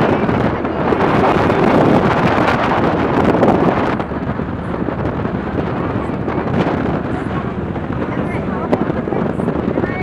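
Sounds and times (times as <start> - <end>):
wind rushing on microphone: 0.0 - 10.0.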